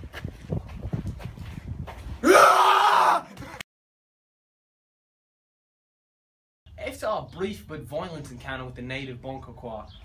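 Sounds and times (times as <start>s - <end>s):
man screaming loudly: 2.2s - 3.3s.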